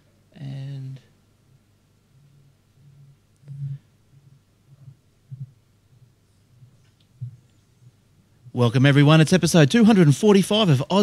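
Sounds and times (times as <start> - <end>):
steady low hum: 0.0 - 11.0
faint low thumping pulse: 1.5 - 8.6.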